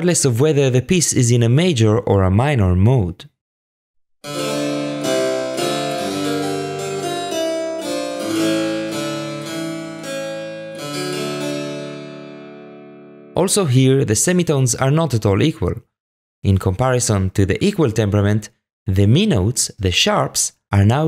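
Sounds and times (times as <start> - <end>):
harpsichord chords: 4.2 - 13.5.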